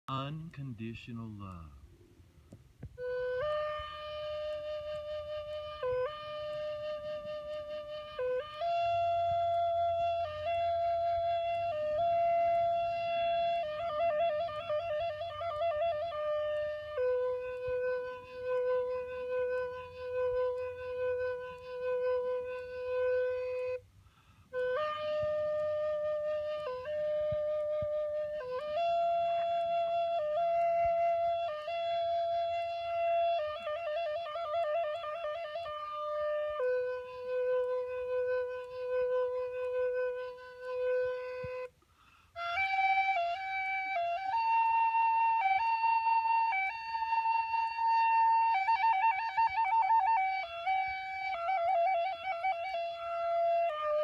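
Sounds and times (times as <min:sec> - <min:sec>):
wooden flute long note: 0:02.8 - 0:54.0.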